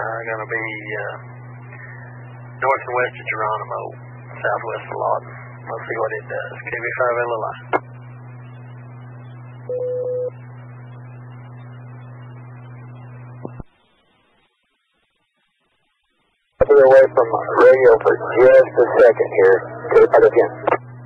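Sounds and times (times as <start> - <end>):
man's voice over radio: 0.0 - 1.2, 2.6 - 7.6, 16.6 - 20.8
radio hum and hiss: 0.0 - 21.0
short radio beep: 9.7 - 10.4.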